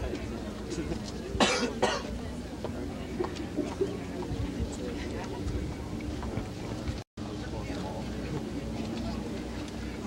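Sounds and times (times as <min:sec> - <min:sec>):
faint murmur of voices: 0:00.0 - 0:10.0
short coughs: 0:01.4 - 0:02.2.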